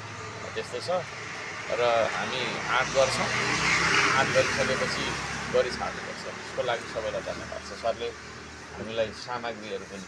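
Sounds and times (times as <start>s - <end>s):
vehicle passing: 0.0s - 10.0s
voices talking: 0.1s - 10.0s.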